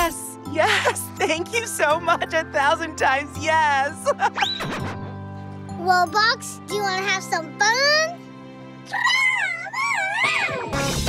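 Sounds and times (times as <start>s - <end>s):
electric guitar and drum music: 4.2s - 8.8s, 10.4s - 11.0s
cartoon warbling vocal cry: 8.9s - 10.8s.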